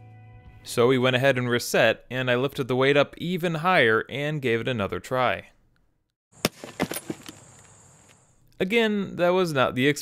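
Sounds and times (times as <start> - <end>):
light knocks settling: 6.4 - 7.7.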